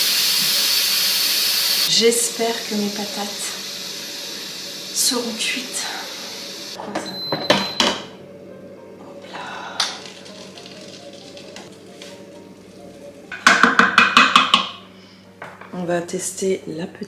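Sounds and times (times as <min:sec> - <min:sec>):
quiet background music: 0:06.8 - 0:17.0.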